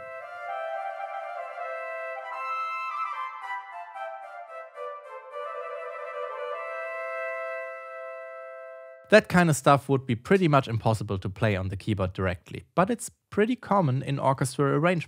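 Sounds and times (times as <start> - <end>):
two flutes playing: 0.0 - 9.1.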